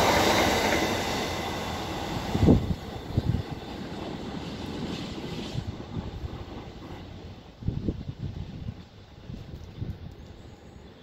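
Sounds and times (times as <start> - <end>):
freight train rumble: 0.0 - 11.0.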